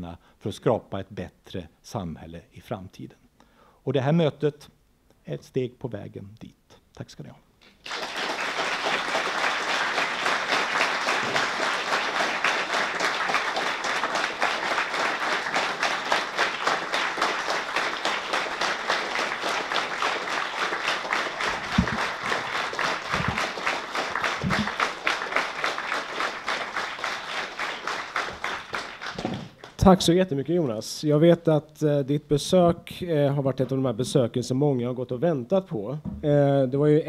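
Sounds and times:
audience applauding: 0:07.6 - 0:29.9.

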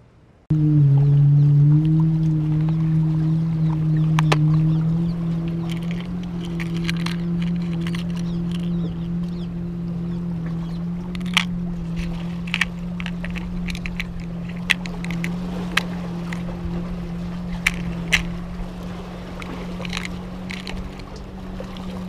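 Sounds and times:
boat engine droning: 0:00.0 - 0:22.0
metal lure clicking on plastic box: 0:05.6 - 0:08.8, 0:11.1 - 0:16.5, 0:17.6 - 0:18.3, 0:19.7 - 0:21.0.

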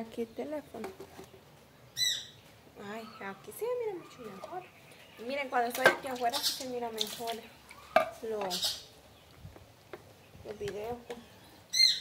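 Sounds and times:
bird squawk: 0:11.7 - 0:12.0.

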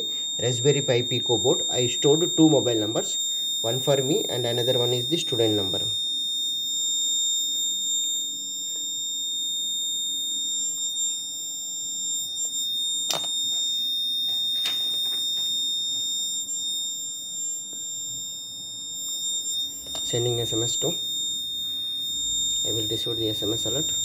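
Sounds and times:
high-pitched alarm buzzer: 0:00.0 - 0:24.0.

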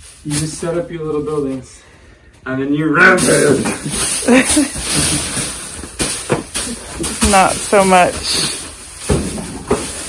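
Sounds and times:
straw rustling and crunching: 0:03.2 - 0:10.0.

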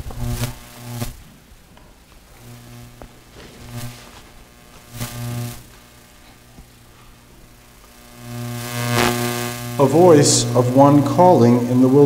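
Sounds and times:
electrical mains hum: 0:00.0 - 0:12.0
microphone handling: 0:02.1 - 0:07.1.

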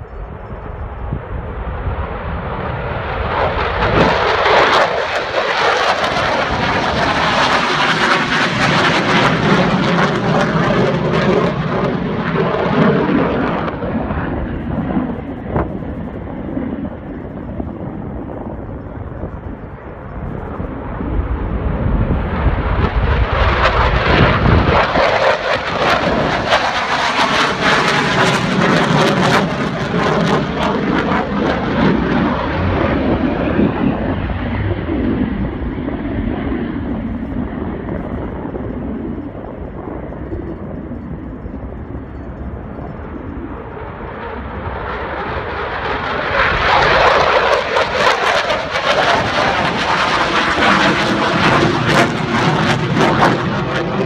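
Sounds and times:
fighter jet flying past: 0:00.0 - 0:54.0.

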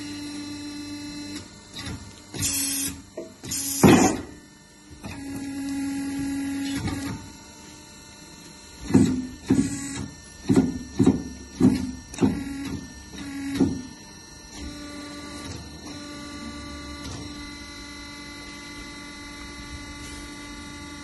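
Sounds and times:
motor humming: 0:08.8 - 0:21.0.

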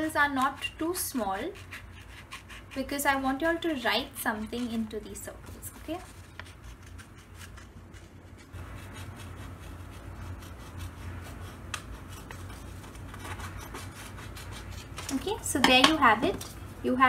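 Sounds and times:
scissors snipping paper: 0:04.4 - 0:15.3.

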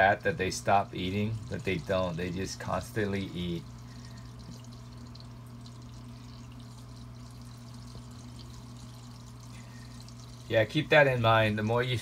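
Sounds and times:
aquarium filter water trickling: 0:00.0 - 0:12.0
low steady hum: 0:00.0 - 0:12.0.

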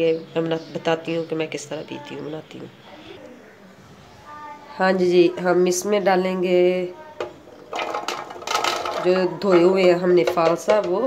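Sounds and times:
berries rattling into plastic jar: 0:07.6 - 0:11.0.

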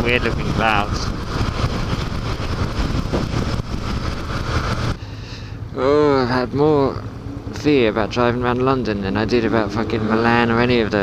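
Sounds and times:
motorcycle engine rumble: 0:00.0 - 0:11.0
wind and road noise: 0:00.0 - 0:11.0.

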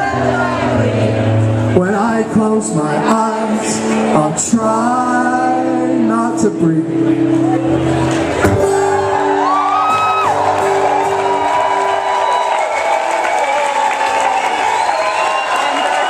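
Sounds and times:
audience cheering and whistling: 0:08.4 - 0:16.0.

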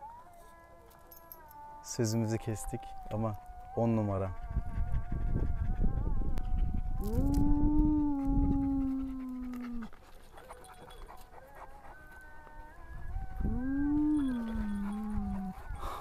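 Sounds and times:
dog howling: 0:00.0 - 0:16.0.

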